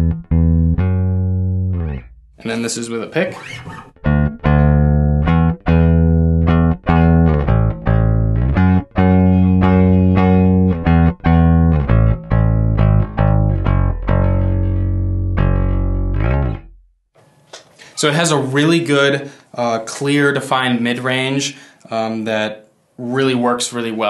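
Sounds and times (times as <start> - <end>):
electric bass played with pick: 0.0 - 16.9.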